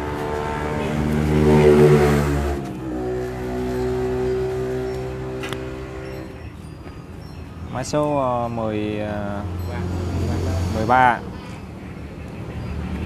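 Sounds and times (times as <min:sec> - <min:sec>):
vehicle engine passing by: 0:00.0 - 0:06.4, 0:08.8 - 0:13.0.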